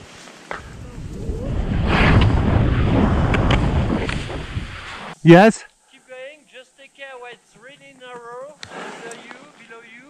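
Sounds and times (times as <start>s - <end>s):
wind noise on microphone: 0.6s - 5.0s.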